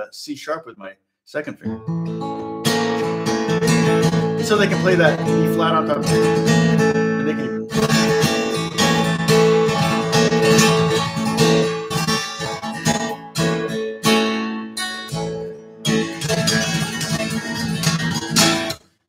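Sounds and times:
acoustic guitar strummed hard: 0:01.7 - 0:18.9.

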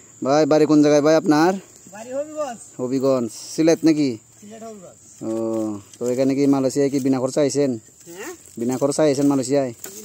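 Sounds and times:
high-pitched insect drone: 0:00.0 - 0:10.0
man talking: 0:00.2 - 0:07.8, 0:08.6 - 0:09.8.

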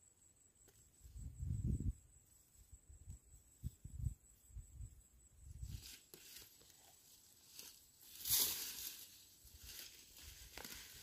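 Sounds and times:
vines rustling: 0:05.6 - 0:11.0.

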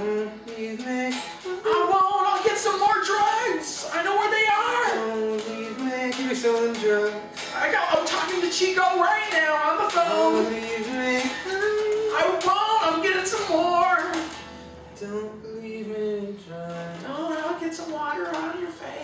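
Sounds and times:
electric guitar: 0:00.0 - 0:19.0
man singing: 0:00.0 - 0:19.0.

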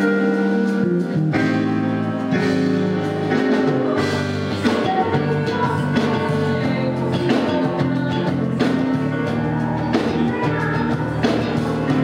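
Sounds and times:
electric bass playing: 0:00.0 - 0:12.0
live band music: 0:00.0 - 0:12.0.

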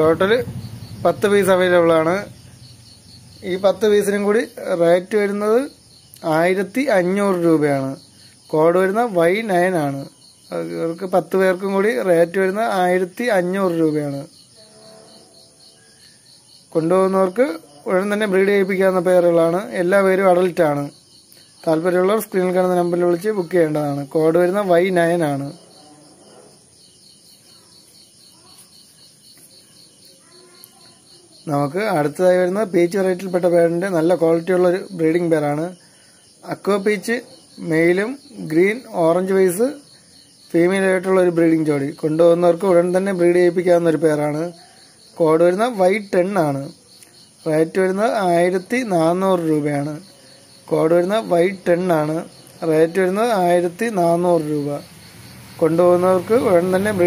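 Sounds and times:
crickets chirring: 0:00.0 - 0:57.0
person speaking: 0:03.4 - 0:14.3, 0:47.5 - 0:54.8, 0:55.6 - 0:57.0.

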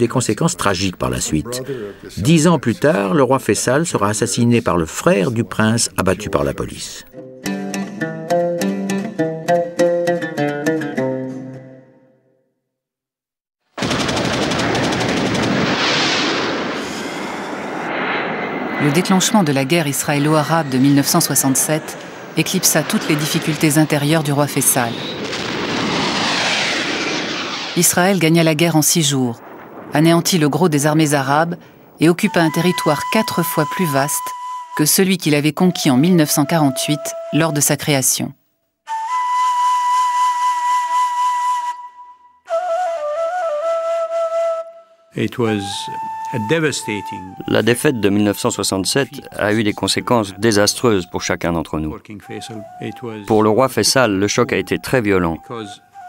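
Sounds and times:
automatic gunfire: 0:13.8 - 0:15.8
loud rushing noise: 0:14.8 - 0:28.3
breathy flute long note: 0:32.3 - 0:35.0, 0:35.7 - 0:37.6, 0:38.9 - 0:48.4, 0:55.4 - 0:56.0.

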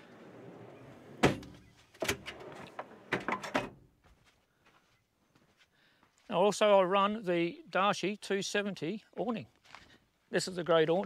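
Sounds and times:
metal drawer sliding and banging shut: 0:00.2 - 0:03.8.

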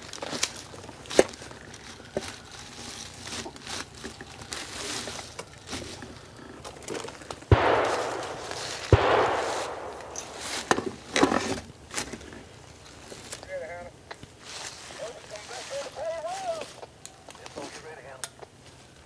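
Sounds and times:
distant voices calling: 0:00.0 - 0:19.0
gunshots: 0:07.5 - 0:11.1.

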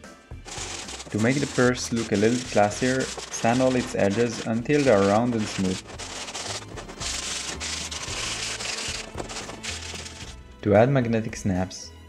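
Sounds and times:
sandpaper rasping by hand: 0:00.5 - 0:10.4.

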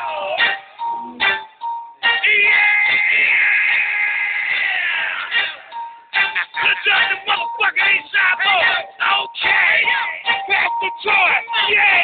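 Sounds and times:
music: 0:00.0 - 0:12.0
person yelling high-pitched: 0:06.7 - 0:12.0.

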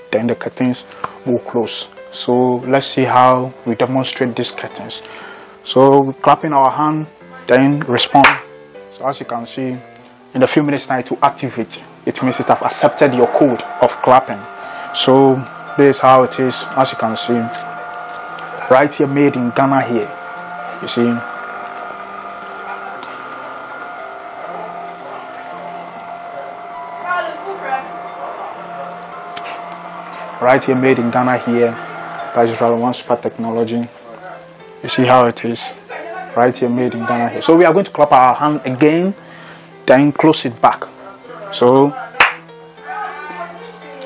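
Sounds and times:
background music with held notes: 0:00.0 - 0:44.0
hand clap: 0:08.2 - 0:08.5, 0:42.2 - 0:42.5
small electric motor humming: 0:11.5 - 0:34.8.

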